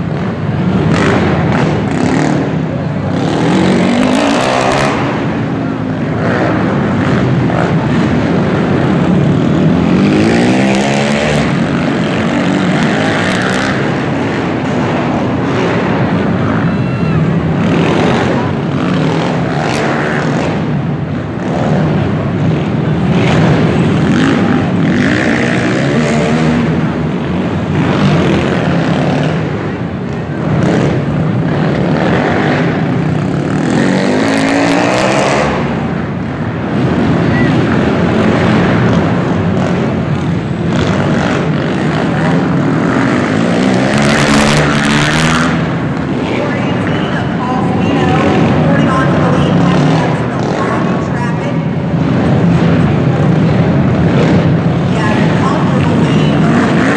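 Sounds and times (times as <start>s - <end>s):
quad engines revving: 0.0s - 56.9s.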